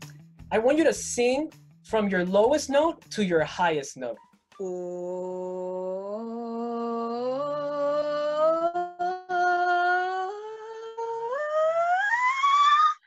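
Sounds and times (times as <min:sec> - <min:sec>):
woman singing vocal exercise: 0:04.6 - 0:13.0.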